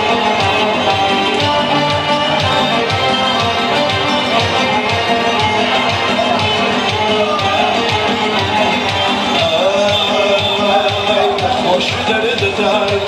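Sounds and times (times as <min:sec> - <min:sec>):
electronic keyboard dance music: 0:00.0 - 0:13.0.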